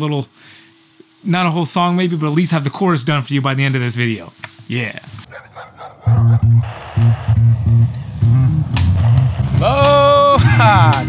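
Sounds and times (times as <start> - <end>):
bass guitar riff: 6.1 - 11.0.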